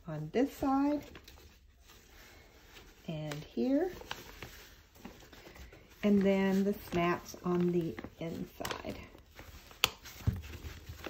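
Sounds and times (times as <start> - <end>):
fabric rustling: 0.0 - 11.0.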